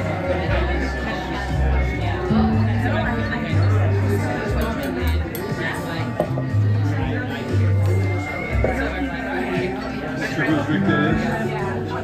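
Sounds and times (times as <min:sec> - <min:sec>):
acoustic guitar playing: 0:02.3 - 0:04.6
low bass notes ringing: 0:02.3 - 0:04.6.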